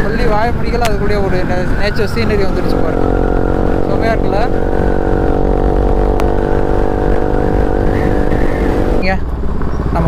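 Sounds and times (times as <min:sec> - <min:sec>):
motorcycle engine running: 0:00.0 - 0:10.0
wind rumble on microphone: 0:00.0 - 0:10.0.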